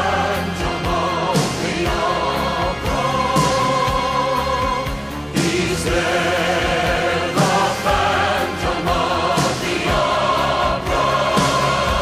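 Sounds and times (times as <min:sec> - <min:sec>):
choir singing held chords: 0:00.0 - 0:12.0
instrumental accompaniment: 0:00.0 - 0:12.0.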